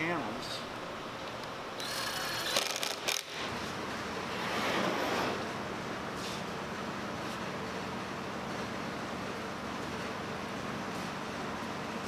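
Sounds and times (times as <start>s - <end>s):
cordless drill spinning: 1.8s - 3.3s.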